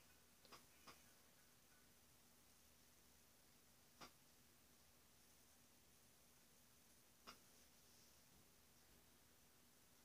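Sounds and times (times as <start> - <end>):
faint clicks: 0.4 - 1.1, 7.2 - 7.5.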